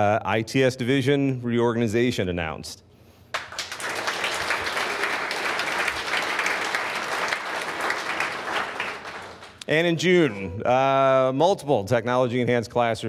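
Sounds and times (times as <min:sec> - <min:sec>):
audience applauding: 0:03.3 - 0:10.4.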